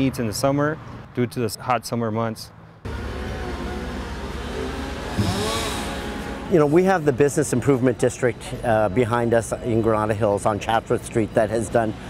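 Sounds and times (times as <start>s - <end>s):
diesel engines rumbling: 2.5s - 12.0s.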